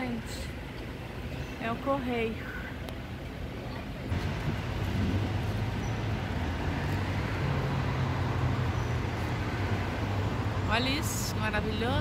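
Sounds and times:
road noise: 0.0 - 12.0
vehicle engine hum: 0.0 - 12.0.

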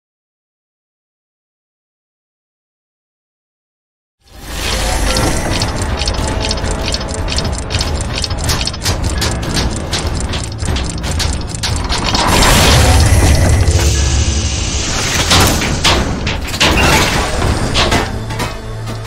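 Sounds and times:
clockwork gears clicking: 4.3 - 18.0
deep rumble: 5.0 - 16.7.

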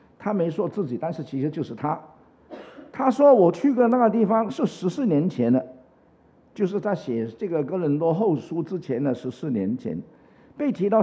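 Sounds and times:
man speaking into a microphone: 0.1 - 2.2, 2.8 - 5.8, 6.6 - 11.0.

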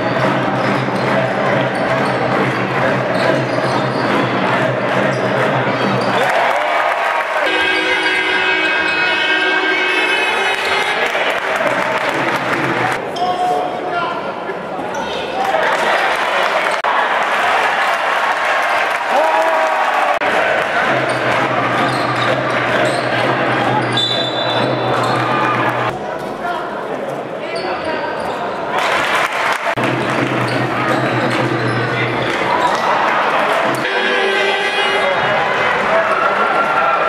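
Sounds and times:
crowd voices in a large hall: 0.0 - 37.0.

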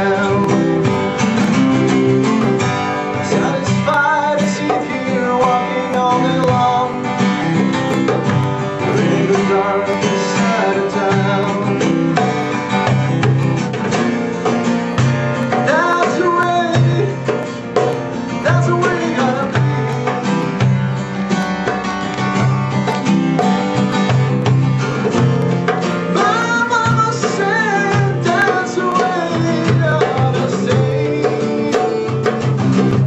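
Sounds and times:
man singing: 0.0 - 12.8, 15.4 - 20.6, 26.1 - 33.0
acoustic guitar: 0.0 - 33.0
hand drum tapping: 0.0 - 33.0.

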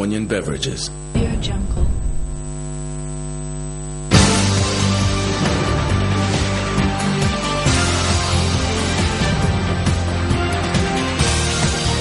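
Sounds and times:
electrical mains hum: 0.0 - 4.2.

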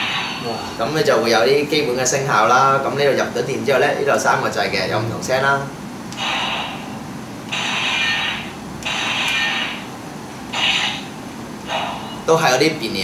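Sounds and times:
toy sword slashing effects: 6.2 - 9.9, 10.6 - 11.1.

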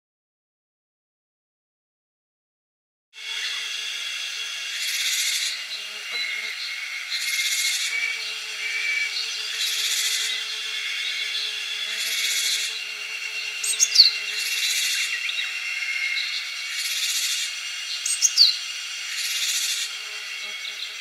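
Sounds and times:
harsh buzzy bird call: 3.2 - 21.0.

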